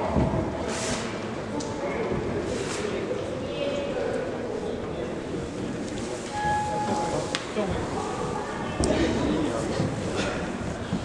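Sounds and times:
murmur of voices in a hall: 0:00.0 - 0:11.0
steady beep: 0:06.3 - 0:07.4.

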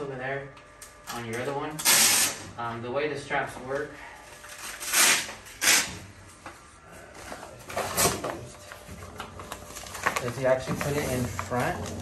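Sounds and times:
fabric straps ripping: 0:04.8 - 0:06.0.

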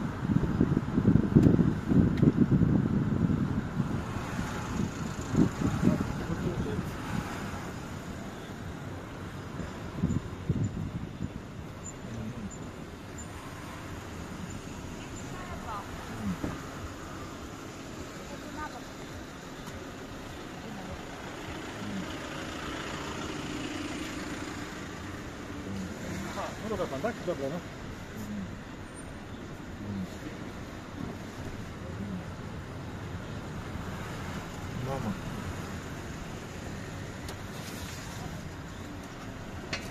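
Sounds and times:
cars passing: 0:00.0 - 0:39.9.

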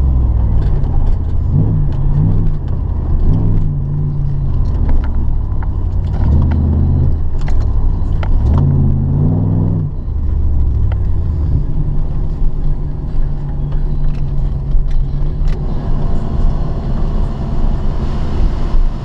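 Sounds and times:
car engine running: 0:00.0 - 0:19.0.

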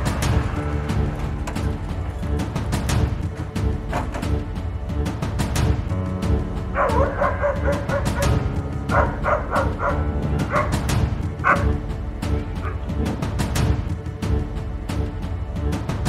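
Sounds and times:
background music with steady beat: 0:00.0 - 0:16.0
dog barking: 0:06.7 - 0:11.8.

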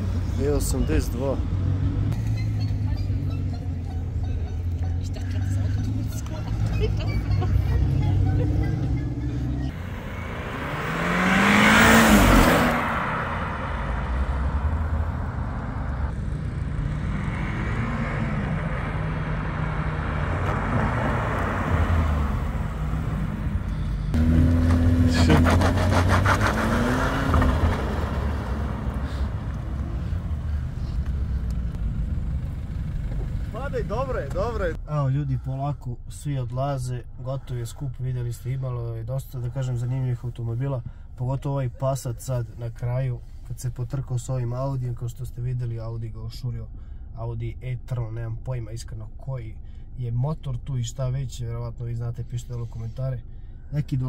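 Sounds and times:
car engines accelerating past: 0:05.5 - 0:33.6.

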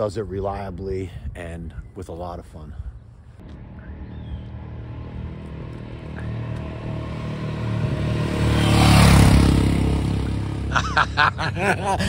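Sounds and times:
motorcycle engine running: 0:03.4 - 0:11.4.

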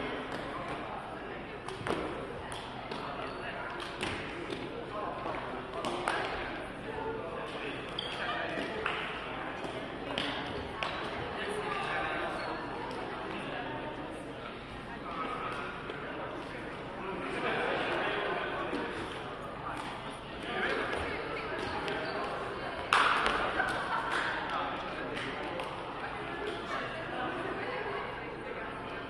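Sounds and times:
voices chattering in echoing hall: 0:00.0 - 0:29.0.

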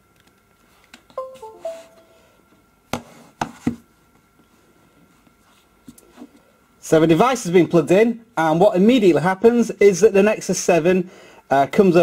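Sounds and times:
electronic chime descending notes: 0:01.2 - 0:02.4.

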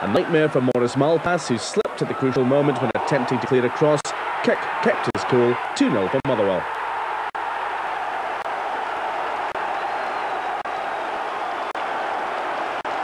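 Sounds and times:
crowd clapping: 0:00.0 - 0:13.0
stadium crowd cheering: 0:00.0 - 0:13.0.

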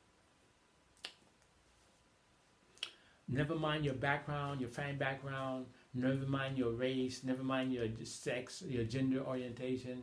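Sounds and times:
mouth clicks: 0:01.0 - 0:01.5, 0:02.7 - 0:03.1.

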